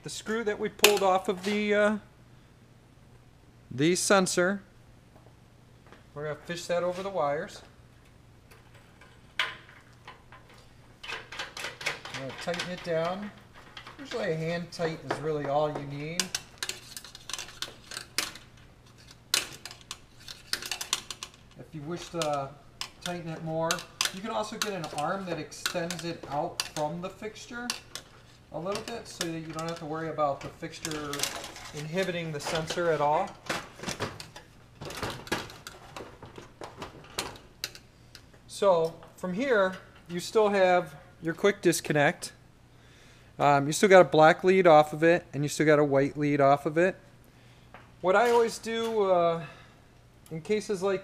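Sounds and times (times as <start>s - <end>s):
metal light fixture clattering: 19.3s - 37.8s.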